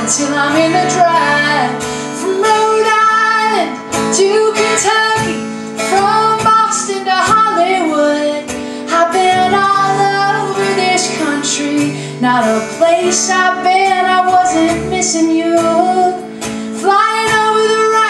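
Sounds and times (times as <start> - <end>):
strummed acoustic guitar: 0.0 - 18.0
woman singing: 0.0 - 18.0.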